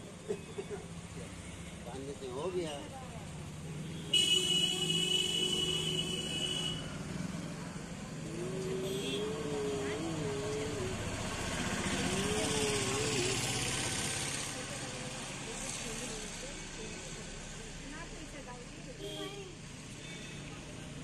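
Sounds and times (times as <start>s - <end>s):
street traffic: 0.0s - 21.0s
vehicle passing by: 6.8s - 17.8s
person humming: 8.2s - 13.7s.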